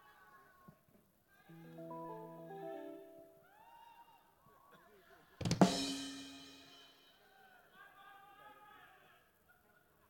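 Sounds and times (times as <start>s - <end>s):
drum and cymbal hit: 5.4s - 7.0s.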